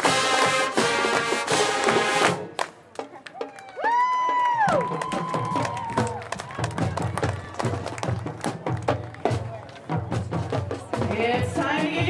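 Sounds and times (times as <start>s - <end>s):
brass band chord: 0.0s - 2.6s
drumline marching beat: 0.0s - 12.0s
crowd cheering: 0.3s - 10.1s.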